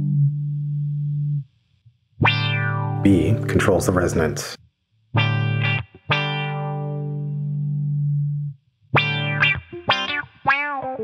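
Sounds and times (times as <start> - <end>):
filtered electric guitar notes: 0.0 - 1.4, 2.2 - 3.5, 5.2 - 11.0.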